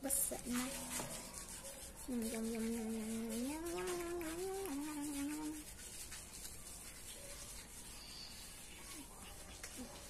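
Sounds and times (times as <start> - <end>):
fingers rubbing wet hair: 0.0 - 10.0.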